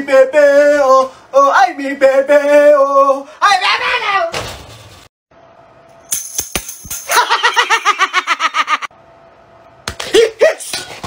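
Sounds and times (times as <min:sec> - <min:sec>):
rapid snickering laugh: 0:07.1 - 0:08.9.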